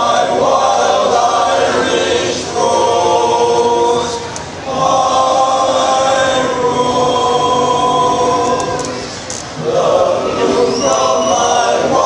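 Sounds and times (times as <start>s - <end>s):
men's barbershop chorus singing: 0.0s - 12.0s.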